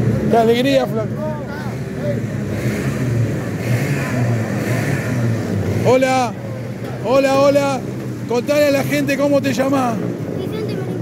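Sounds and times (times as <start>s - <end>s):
kart engines droning: 0.0s - 11.0s.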